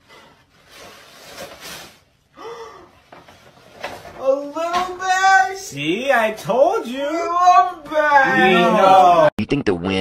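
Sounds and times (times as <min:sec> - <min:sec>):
person gasping: 0:02.4 - 0:03.0.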